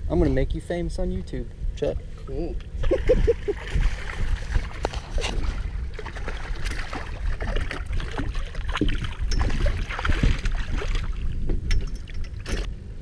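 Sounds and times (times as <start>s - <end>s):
wind on microphone: 1.6s - 12.7s
fish splashing at the surface: 3.1s - 11.3s.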